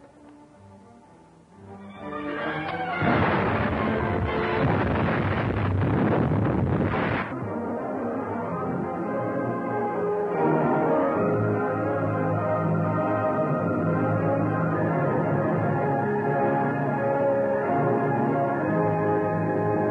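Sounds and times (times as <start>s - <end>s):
dramatic orchestral music: 0.0s - 19.9s
explosion sound effect: 2.9s - 7.4s.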